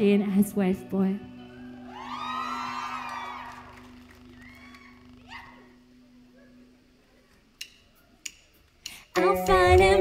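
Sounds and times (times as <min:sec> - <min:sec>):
long rising and falling whoop: 0:01.6 - 0:05.7.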